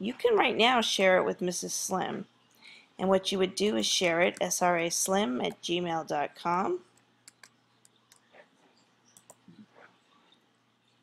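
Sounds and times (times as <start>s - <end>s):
keyboard and mouse clicks: 7.3s - 8.3s, 9.1s - 9.5s.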